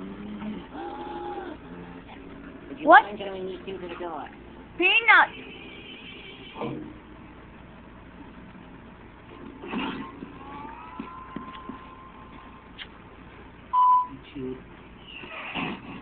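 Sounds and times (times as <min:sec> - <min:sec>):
short loud beep: 0:13.8 - 0:14.2.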